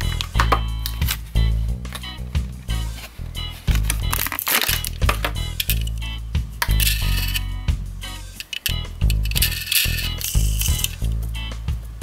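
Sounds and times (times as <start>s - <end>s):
background music with bass line: 0.0s - 12.0s
plastic packaging crinkling: 2.9s - 6.0s, 8.4s - 10.9s.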